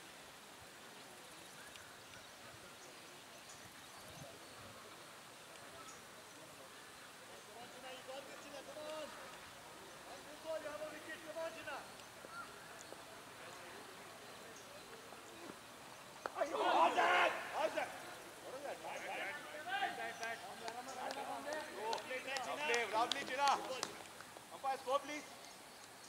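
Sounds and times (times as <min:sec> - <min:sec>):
chatter: 0:01.1 - 0:25.5
fielders shouting and calling: 0:06.7 - 0:25.3
voices shouting together loudly: 0:16.3 - 0:23.9.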